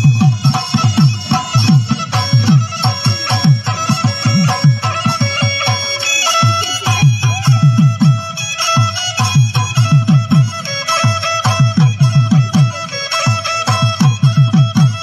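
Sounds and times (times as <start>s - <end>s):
high melody of held notes: 0.0s - 15.0s.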